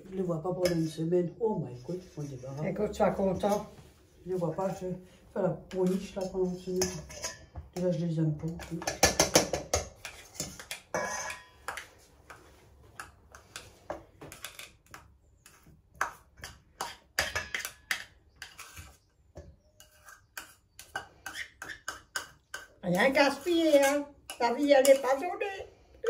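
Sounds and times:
utensils clinking on steel bowl: 5.7 - 12.0, 14.3 - 25.5.

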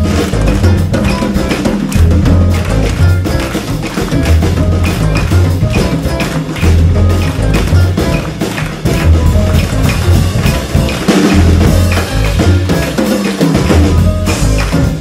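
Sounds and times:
low bass line: 0.0 - 13.0, 13.6 - 15.0
drums and percussion: 0.0 - 15.0
live jazz band: 0.0 - 15.0.

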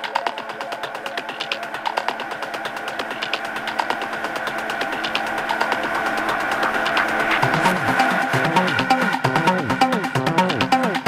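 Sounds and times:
fast percussive hits: 0.0 - 11.0.

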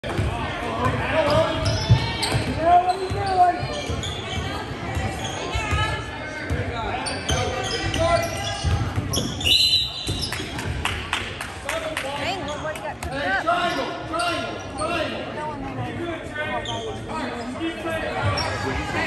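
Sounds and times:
voices echoing in hall: 0.0 - 19.0.

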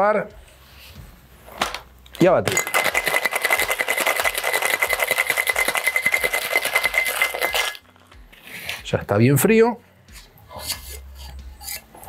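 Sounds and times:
ice rattling in cocktail shaker: 2.4 - 8.0.

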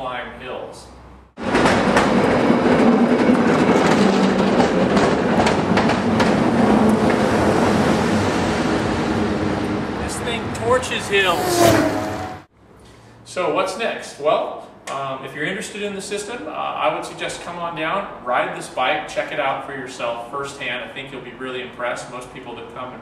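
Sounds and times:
cable car rumbling and rattling: 1.4 - 10.9
gliding rising and falling cries: 10.2 - 12.5.

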